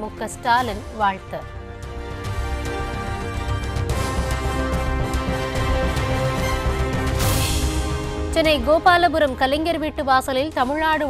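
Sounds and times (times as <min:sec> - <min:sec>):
synth theme music with beat: 0:00.0 - 0:10.7.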